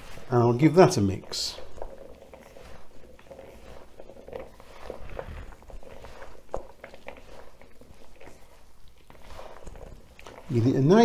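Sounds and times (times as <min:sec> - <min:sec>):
wet clicks and rustles of mixing: 0:00.0 - 0:11.0.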